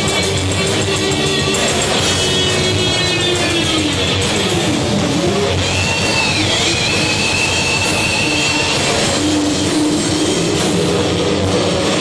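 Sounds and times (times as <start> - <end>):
heavy metal band playing live: 0.0 - 12.0
high held guitar squeal: 0.0 - 12.0.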